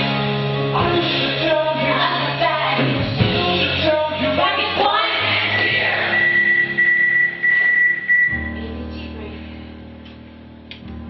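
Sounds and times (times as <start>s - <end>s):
high-pitched steady tone: 5.5s - 8.6s.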